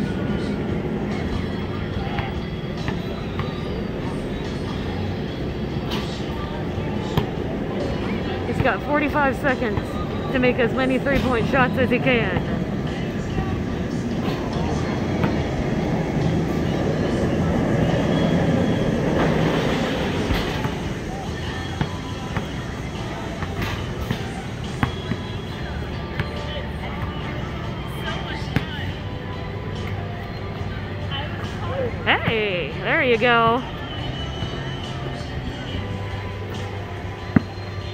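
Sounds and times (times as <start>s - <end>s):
music: 0.0s - 37.9s.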